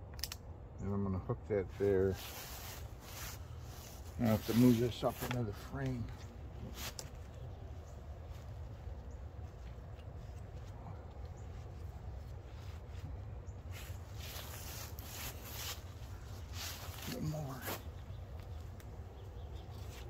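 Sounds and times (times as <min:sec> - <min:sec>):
steady low rumble: 0:00.0 - 0:20.0
rope rustling: 0:01.7 - 0:20.0.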